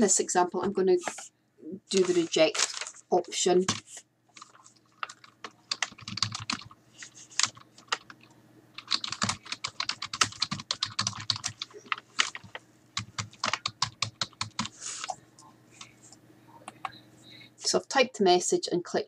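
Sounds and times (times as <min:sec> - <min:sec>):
computer keyboard typing: 0:03.6 - 0:15.2.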